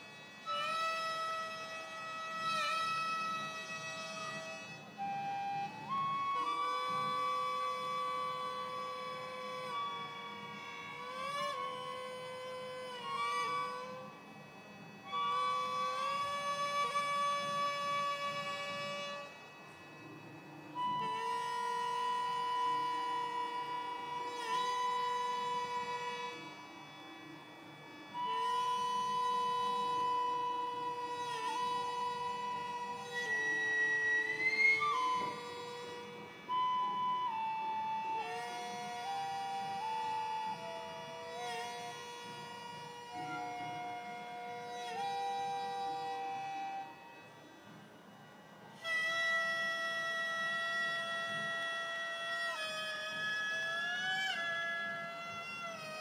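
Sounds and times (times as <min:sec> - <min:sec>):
bamboo flute melody: 0:00.0 - 0:56.0
double-reed pipe: 0:00.0 - 0:56.0
mouth organ sustained chords: 0:00.0 - 0:56.0.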